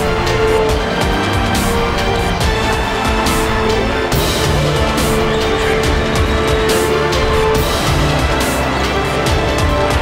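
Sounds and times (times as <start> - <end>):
loud music with steady beat: 0.0 - 10.0.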